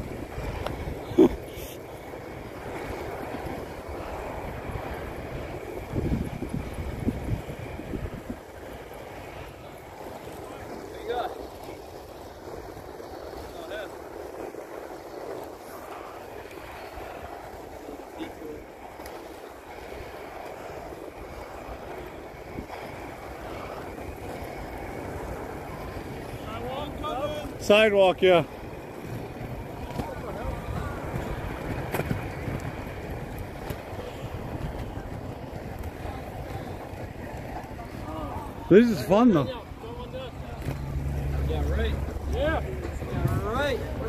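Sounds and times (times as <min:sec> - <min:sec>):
skate wheels rolling on pavement: 0:00.0 - 0:44.0
wind buffeting microphone: 0:00.0 - 0:44.0.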